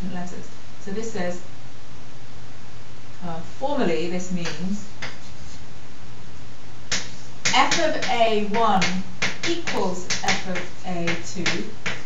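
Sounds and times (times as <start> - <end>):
chalk tapping on blackboard: 4.4 - 5.3, 6.9 - 12.0.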